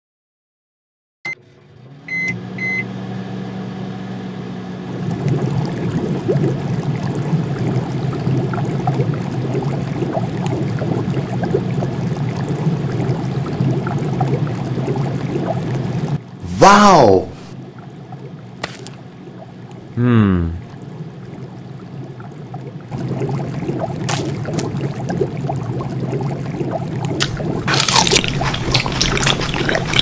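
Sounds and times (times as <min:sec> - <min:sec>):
broth crackling and bubbling: 0:04.8 - 0:16.5, 0:17.6 - 0:20.0, 0:20.6 - 0:30.0.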